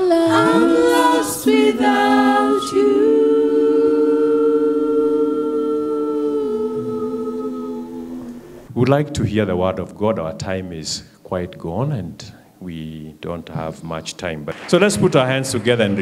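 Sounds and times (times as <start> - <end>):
women singing in harmony: 0.0 - 8.7.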